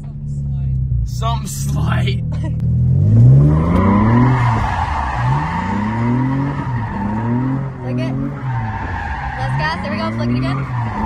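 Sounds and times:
car engine revving: 0:00.0 - 0:11.0
tyres squealing: 0:03.7 - 0:11.0.

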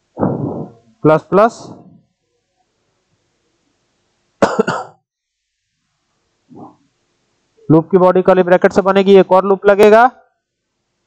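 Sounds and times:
man coughing: 0:04.4 - 0:05.0.

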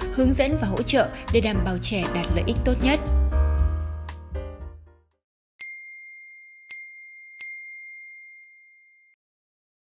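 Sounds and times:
bell-like dings: 0:05.6 - 0:09.2.

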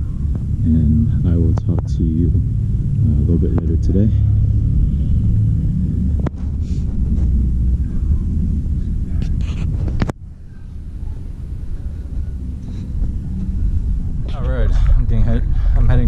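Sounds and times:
wind rumbling on microphone: 0:00.0 - 0:16.0.

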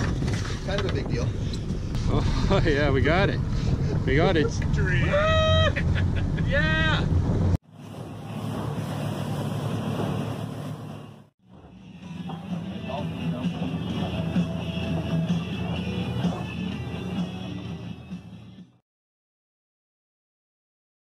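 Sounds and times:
boat outboard engines droning: 0:07.0 - 0:18.5
music playing: 0:11.6 - 0:18.8.

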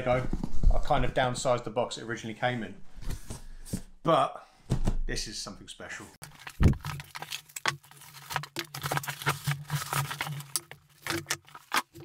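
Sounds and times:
packaging rustling and clicking: 0:06.2 - 0:12.0
cardboard box thump: 0:06.6 - 0:07.0.

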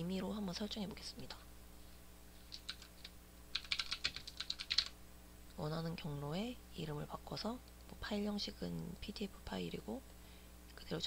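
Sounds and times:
computer keyboard typing: 0:02.5 - 0:05.0.

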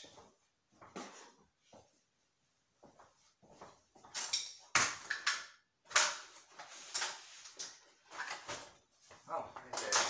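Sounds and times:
tools clattering: 0:04.0 - 0:08.8.

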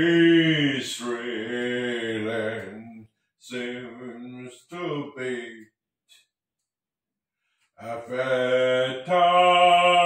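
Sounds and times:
singing voice holding a note: 0:07.8 - 0:10.0.

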